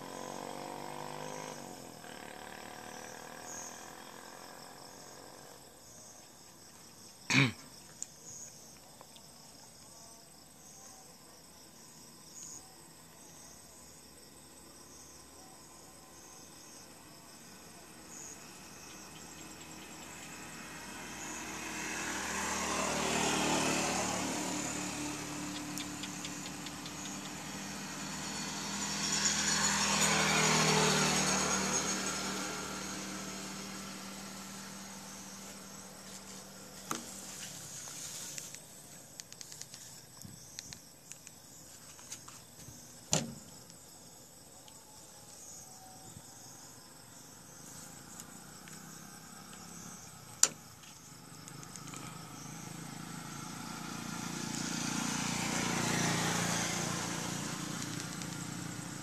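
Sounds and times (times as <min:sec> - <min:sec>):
motor vehicles passing: 0:00.0 - 0:05.9, 0:16.6 - 0:38.6, 0:46.4 - 0:59.0.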